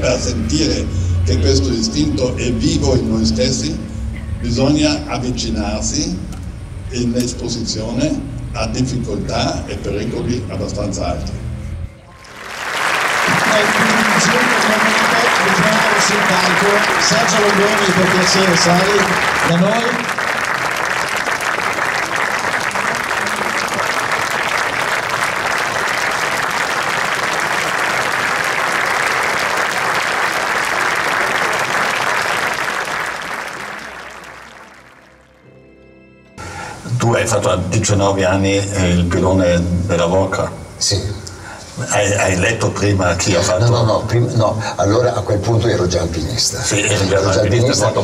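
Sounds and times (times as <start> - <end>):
voices: 12.1 - 20.3, 36.9 - 48.0
audience applauding: 12.2 - 35.3, 46.7 - 48.0.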